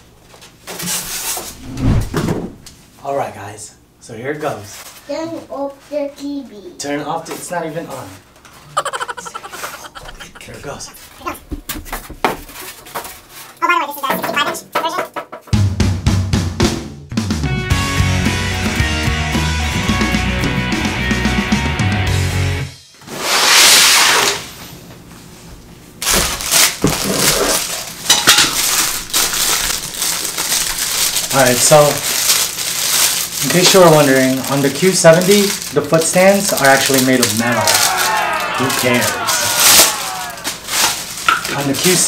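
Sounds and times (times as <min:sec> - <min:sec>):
loud rush of noise: 0:01.6 - 0:02.5
rock background music: 0:15.6 - 0:22.8
polystyrene foam squeaking: 0:23.1 - 0:24.4, 0:26.0 - 0:28.0, 0:28.6 - 0:42.0
plastic packaging crinkling: 0:26.0 - 0:42.0.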